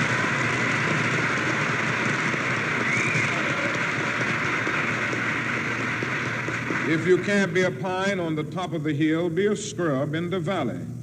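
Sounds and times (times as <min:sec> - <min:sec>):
audience applauding: 0:00.0 - 0:07.7.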